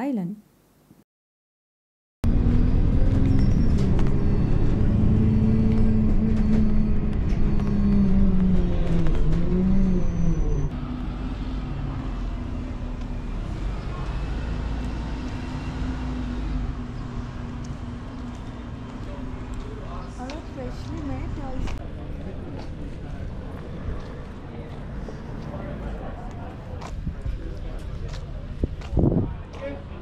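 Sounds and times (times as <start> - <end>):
bus engine and drivetrain: 2.2 - 30.0.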